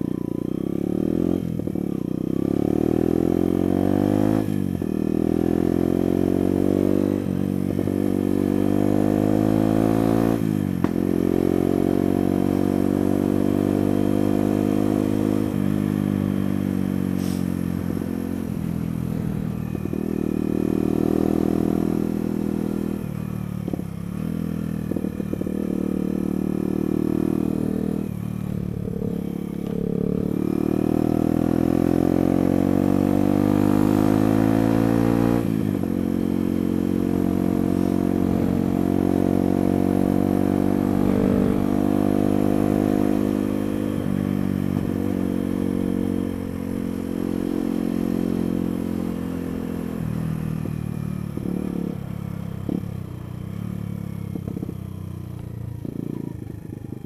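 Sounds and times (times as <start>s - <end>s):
motorcycle engine revving: 0.0s - 57.0s.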